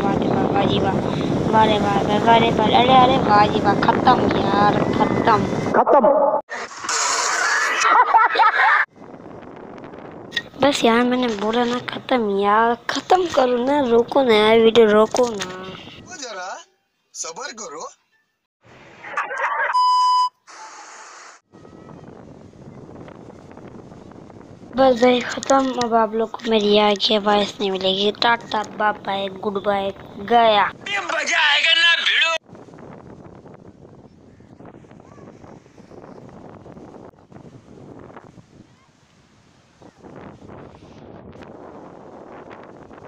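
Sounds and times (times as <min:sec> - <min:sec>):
wind buffeting microphone: 0:00.0 - 0:05.9, 0:08.8 - 0:16.2, 0:21.5 - 0:31.2, 0:32.4 - 0:43.0
tv static hiss: 0:18.9 - 0:19.7
steady beep tone: 0:19.7 - 0:20.4
man shouting excitedly: 0:30.8 - 0:32.4.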